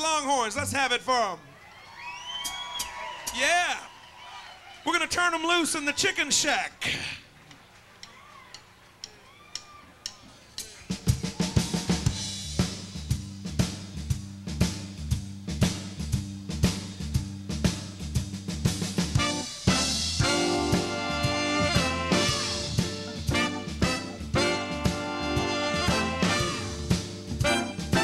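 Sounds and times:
drum kit beat: 0:08.0 - 0:28.0
bass line: 0:12.0 - 0:28.0
horn section: 0:19.1 - 0:28.0.

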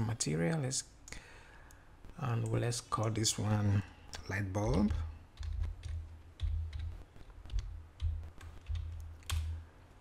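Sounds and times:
computer keyboard typing: 0:04.6 - 0:09.6.

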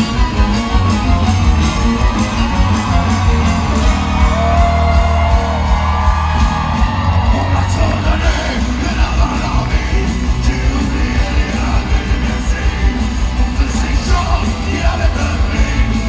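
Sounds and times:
live rock band playing: 0:00.0 - 0:16.0
man singing into microphone: 0:07.2 - 0:16.0.

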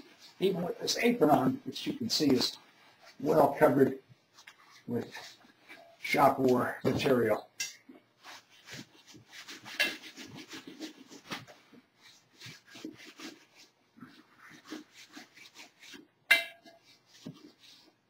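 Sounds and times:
rag rubbing on a mold: 0:08.2 - 0:18.0.

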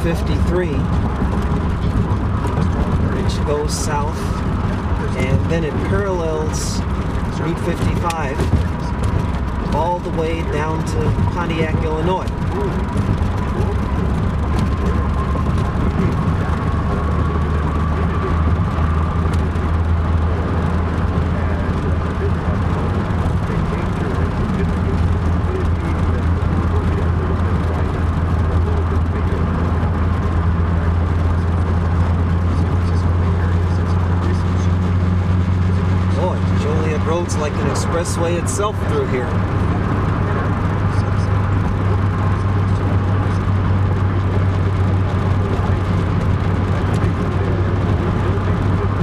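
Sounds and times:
car engine and tyres drone: 0:00.0 - 0:49.0.

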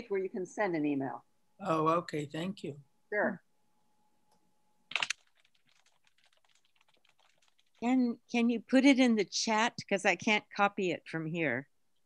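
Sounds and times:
typing on computer keyboard: 0:04.9 - 0:07.8.

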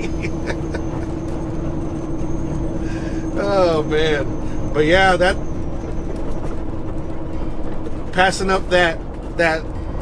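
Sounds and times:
road noise: 0:00.0 - 0:10.0
truck diesel engine rumble: 0:00.0 - 0:10.0.

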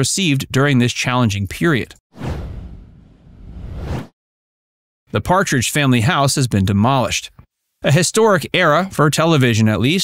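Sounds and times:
whoosh transition effect: 0:02.2 - 0:04.1.

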